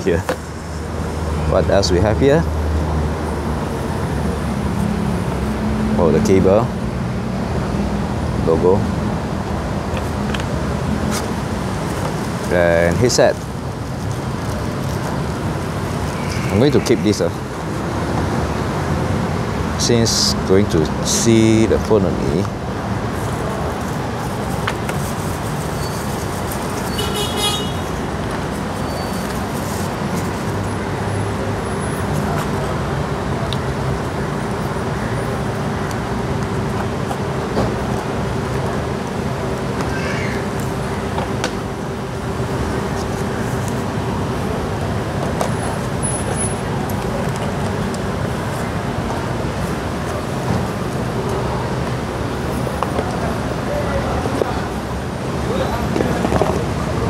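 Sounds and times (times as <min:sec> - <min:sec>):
road traffic: 0:00.0 - 0:57.0.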